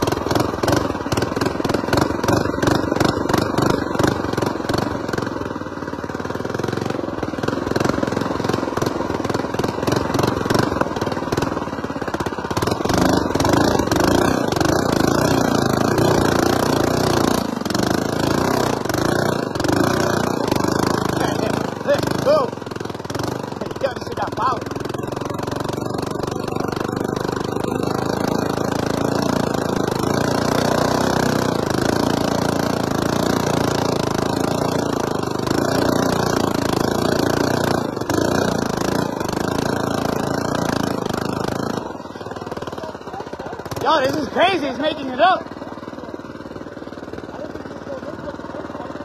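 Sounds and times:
small engine running under throttle: 0.0s - 49.0s.

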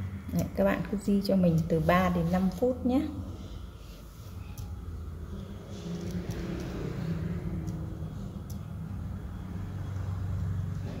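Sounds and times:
faint drifting hum: 1.7s - 11.0s
low engine-like rumble: 4.7s - 11.0s.

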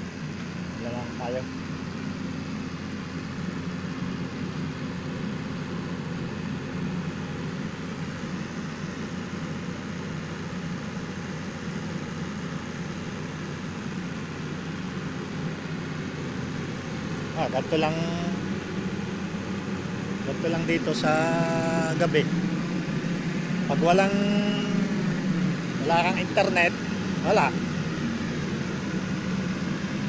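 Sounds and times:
generator engine running: 0.0s - 30.0s.

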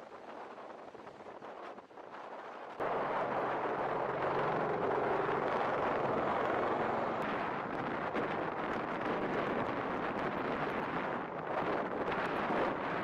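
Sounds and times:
low hum: 2.8s - 12.2s
aircraft rotors rushing: 2.8s - 13.0s.

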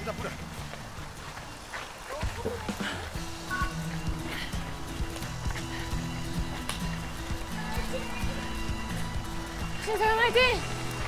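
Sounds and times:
running footsteps on a path: 0.0s - 11.0s.

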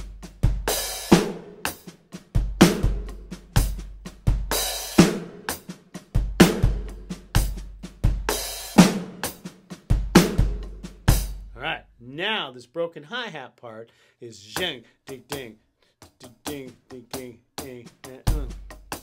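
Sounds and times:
electronic drum kit funk groove: 0.0s - 11.7s, 14.5s - 19.0s.

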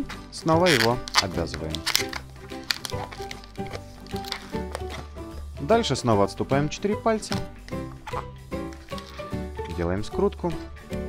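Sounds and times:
background music: 0.0s - 11.0s
balloon squeaking and creaking: 0.6s - 5.3s, 7.3s - 9.4s.

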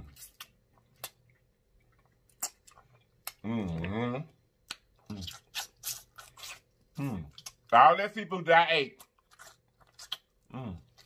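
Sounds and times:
wet chewing and mouth smacks: 0.0s - 4.0s, 4.6s - 7.7s, 8.9s - 11.0s.

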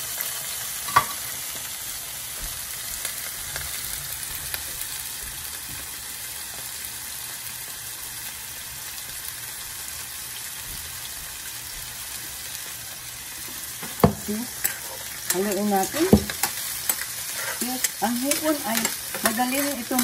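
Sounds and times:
food sizzling in oil: 0.0s - 20.0s.

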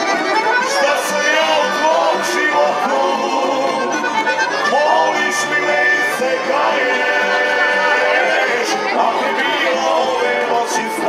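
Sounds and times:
accordion melody: 0.0s - 11.0s
plucked string folk band: 0.0s - 11.0s.

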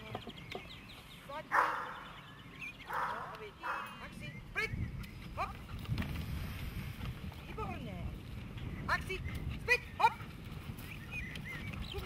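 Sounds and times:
dog barking: 1.5s - 2.0s, 2.9s - 4.0s.

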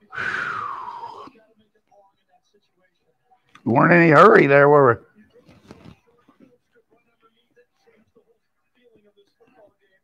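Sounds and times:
man blowing out breathy whew: 0.0s - 1.3s.

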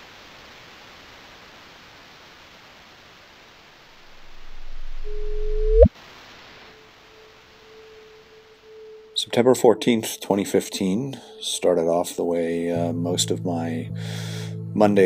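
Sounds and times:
steady hiss: 0.0s - 5.3s, 5.9s - 9.3s
low rumble: 4.1s - 5.9s
synth tone sweeping into chirp: 4.2s - 5.9s.

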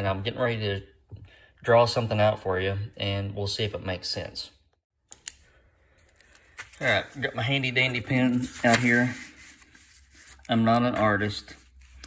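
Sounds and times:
man speaking: 0.0s - 1.0s, 1.6s - 4.6s, 6.8s - 9.2s, 10.4s - 11.7s.

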